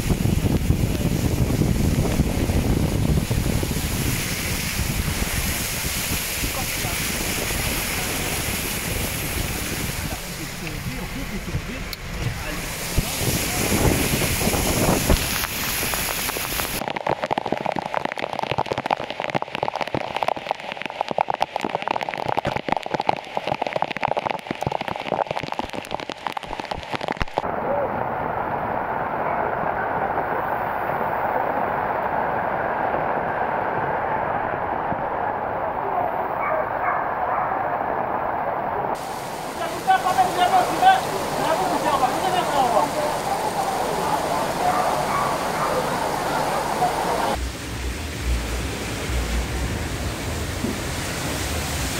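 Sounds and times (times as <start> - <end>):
heavy rain pouring: 0.0 - 51.9
people's voices: 6.4 - 14.3, 35.6 - 47.4.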